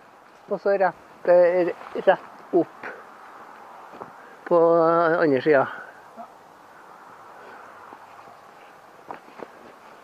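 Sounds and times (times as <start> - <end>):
footsteps on dirt path: 0.0 - 4.5, 7.1 - 10.0
faint outdoor hiss: 0.0 - 10.0.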